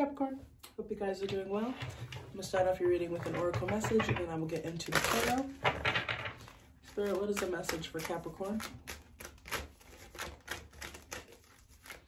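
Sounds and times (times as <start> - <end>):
cards being shuffled: 4.5 - 5.6.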